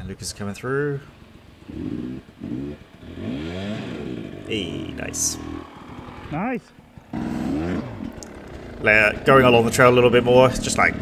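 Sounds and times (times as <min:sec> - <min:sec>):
dirt bike engine revving: 0:01.3 - 0:11.0.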